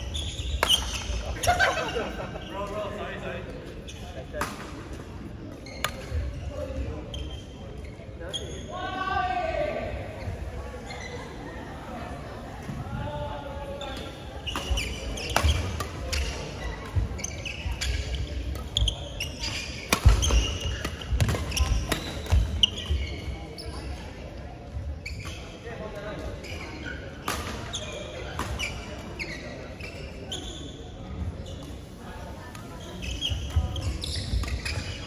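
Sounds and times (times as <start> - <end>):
shoes squeaking on court: 0.0 - 2.6, 5.5 - 8.7, 13.8 - 24.1, 25.0 - 25.6, 26.4 - 35.0
rackets hitting shuttlecock: 14.5 - 17.0, 19.8 - 22.6.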